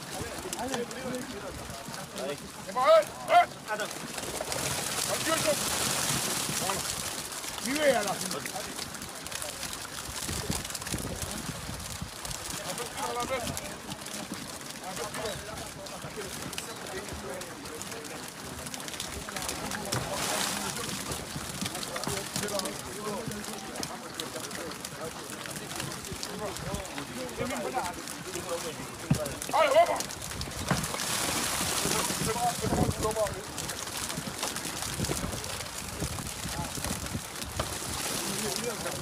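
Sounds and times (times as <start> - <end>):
people talking indistinctly: 0.0 - 39.0
fish emptied from crate: 3.8 - 39.0.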